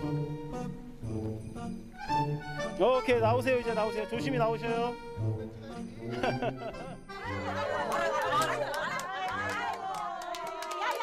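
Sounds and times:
women chattering and laughing: 6.1 - 10.5
hand claps: 7.7 - 11.0.

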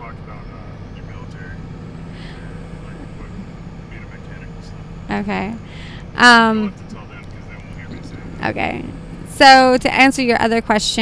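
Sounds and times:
road and engine rumble: 0.0 - 11.0.

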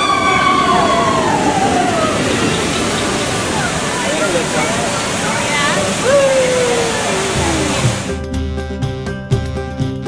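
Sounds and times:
long falling cry: 0.0 - 2.3, 6.0 - 8.1
riders whooping and screaming: 0.0 - 2.8, 5.8 - 8.1
roller coaster rushing noise: 0.0 - 8.2
guitar music: 7.4 - 9.2.

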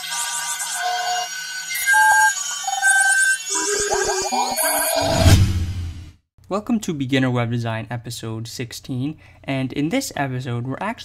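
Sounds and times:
synthesized beeps jingle: 1.7 - 5.3.

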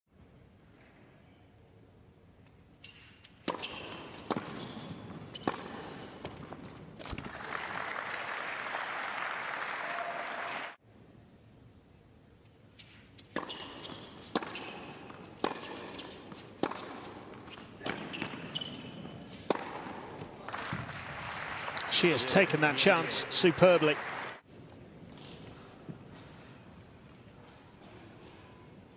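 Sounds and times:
tennis ball hit by rackets: 2.9 - 6.5, 12.8 - 20.9
crowd applause: 7.2 - 10.8, 20.4 - 24.4.

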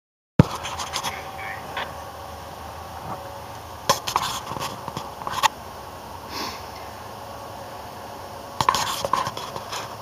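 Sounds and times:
low steady hum: 0.4 - 10.0.

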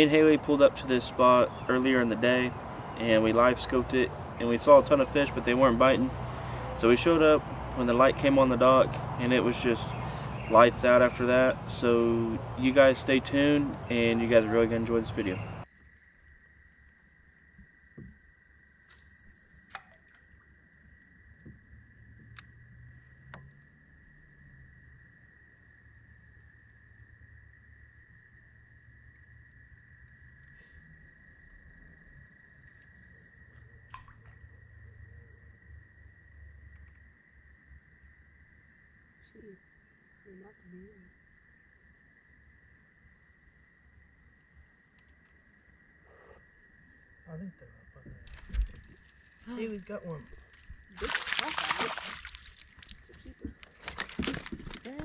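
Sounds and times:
fish splashing in water: 50.4 - 55.0.

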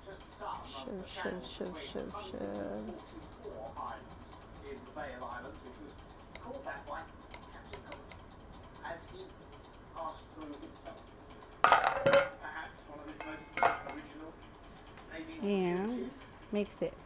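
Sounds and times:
metal clattering against bowl: 11.6 - 14.2.

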